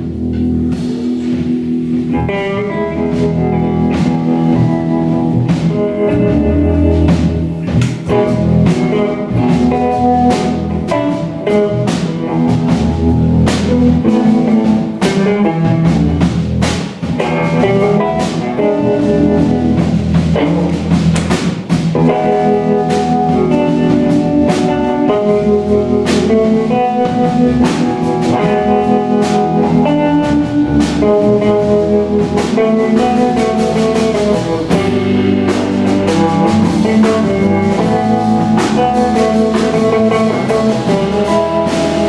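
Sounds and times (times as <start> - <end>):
jazz guitar trio playing: 0.0 - 42.0.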